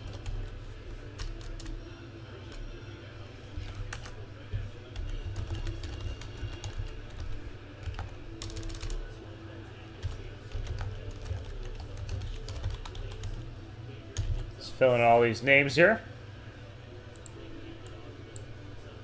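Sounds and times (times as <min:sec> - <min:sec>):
typing on a computer keyboard: 0:00.0 - 0:00.4, 0:01.2 - 0:01.8, 0:05.0 - 0:09.0, 0:10.0 - 0:13.4
steady low hum: 0:00.0 - 0:19.0.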